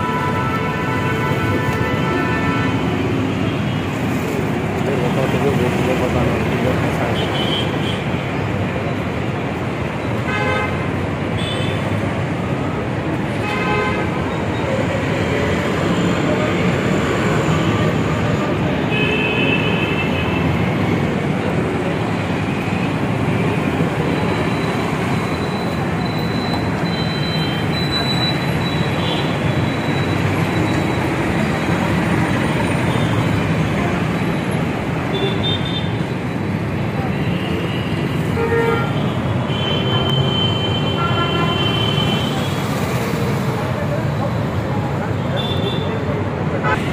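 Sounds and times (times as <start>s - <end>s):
passing vehicles: 0.0s - 46.9s.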